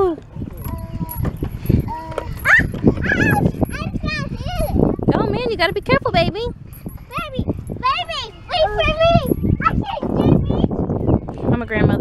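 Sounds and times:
toddler babbling: 0.6 - 4.9.

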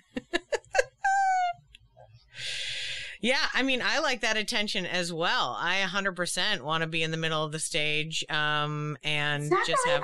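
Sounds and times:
woman laughing: 0.0 - 1.6, 9.5 - 10.0.

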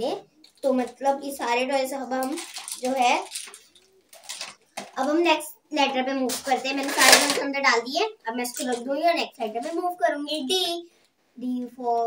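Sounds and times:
girl speaking: 0.0 - 3.5, 4.9 - 12.0.

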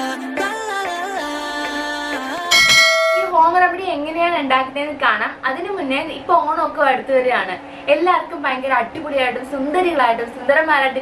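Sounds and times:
bright bell chime: 2.5 - 3.3.

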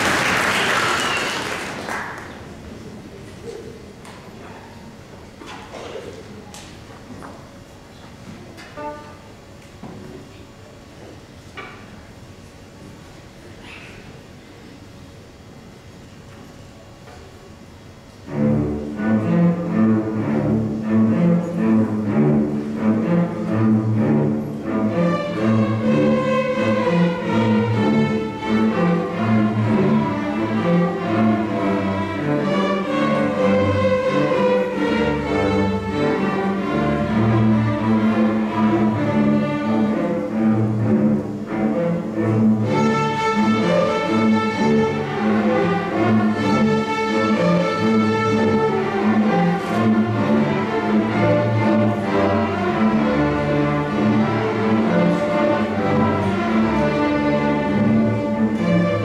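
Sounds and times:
string orchestra playing: 8.6 - 9.4, 18.0 - 59.0
violins playing: 8.6 - 9.4, 18.2 - 59.0
cellos and basses low figure: 18.2 - 59.0.

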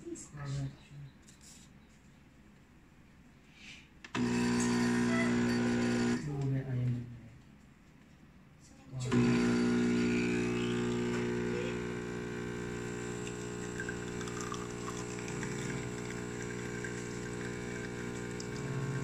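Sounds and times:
espresso machine pump humming: 4.2 - 6.3, 9.1 - 19.0.

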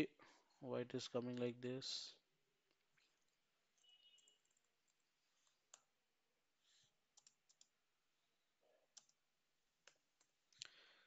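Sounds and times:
computer keys and mouse clicking: 2.9 - 6.0, 7.1 - 7.8, 8.9 - 9.2, 9.8 - 10.6.

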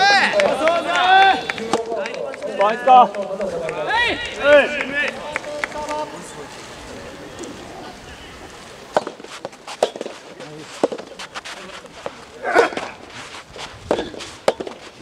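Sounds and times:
men shouting short calls: 0.0 - 2.0, 12.3 - 13.0.

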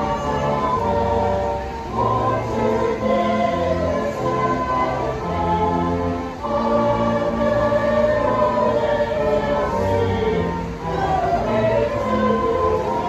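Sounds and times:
choir singing in harmony: 0.0 - 13.0.

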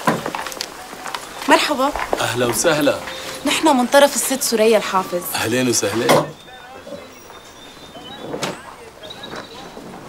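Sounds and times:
low street ambience: 0.0 - 10.0
voices murmuring: 0.0 - 10.0.

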